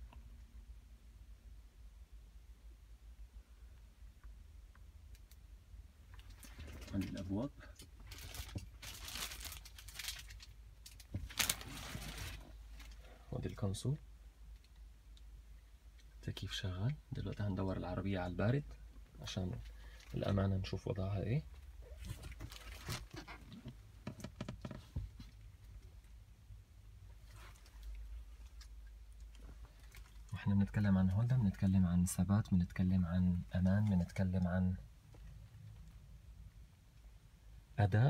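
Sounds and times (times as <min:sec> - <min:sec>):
plastic sheeting crinkling: 0:08.0 - 0:13.0.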